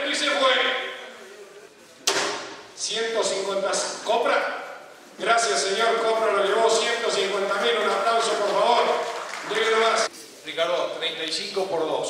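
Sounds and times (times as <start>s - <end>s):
man talking: 0.0s - 1.9s, 2.7s - 12.0s
sharp knock: 2.0s - 2.6s.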